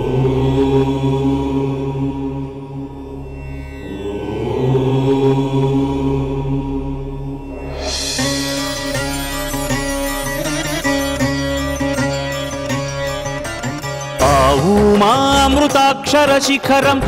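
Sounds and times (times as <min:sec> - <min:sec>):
low drone: 0:00.0 - 0:14.9
deep om chant: 0:00.0 - 0:17.0.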